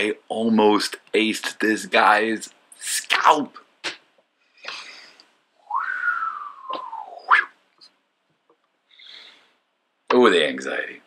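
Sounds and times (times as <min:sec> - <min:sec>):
breathy puff: 0:04.6 - 0:05.2.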